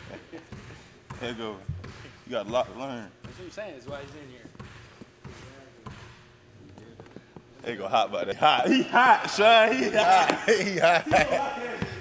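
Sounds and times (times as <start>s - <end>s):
basketballs bouncing on wooden floor: 0.0s - 6.4s.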